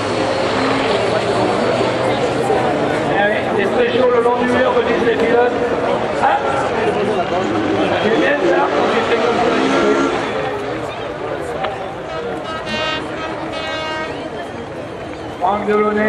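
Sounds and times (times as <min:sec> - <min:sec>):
crowd noise: 0:00.0 - 0:16.0
public address commentary: 0:00.5 - 0:16.0.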